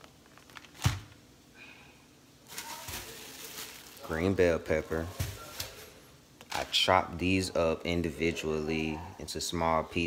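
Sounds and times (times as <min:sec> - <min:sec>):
plastic bag rustling: 0:00.0 - 0:01.2, 0:02.4 - 0:06.9.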